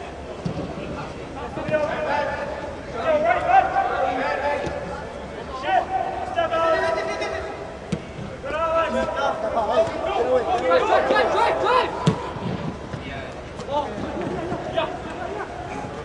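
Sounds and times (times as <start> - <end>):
players shouting: 1.4 - 16.0
soccer ball kicked thuds: 7.9 - 8.3, 12.0 - 14.6.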